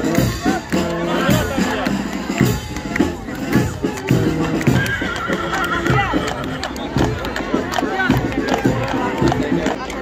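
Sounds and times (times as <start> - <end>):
hooves clip-clopping on asphalt: 0.0 - 10.0
horse whinnying: 4.7 - 6.6.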